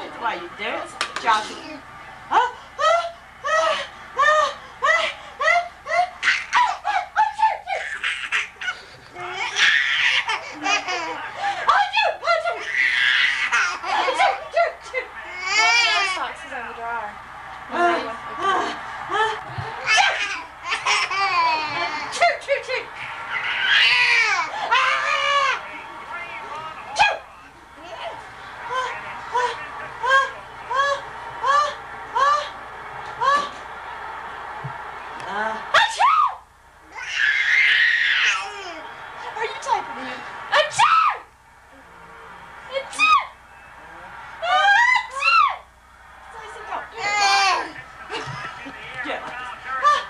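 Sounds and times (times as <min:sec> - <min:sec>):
baby laughing: 0:04.9 - 0:11.3, 0:12.4 - 0:14.6, 0:19.8 - 0:22.4, 0:23.2 - 0:25.6.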